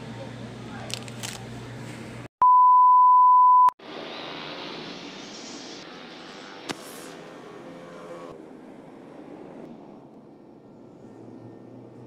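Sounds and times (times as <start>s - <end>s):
hiss of street noise: 3.8s - 7.7s.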